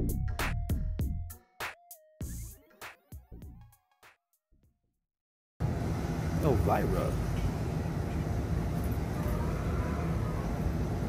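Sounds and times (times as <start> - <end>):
faint voices: 8.9 - 11.0.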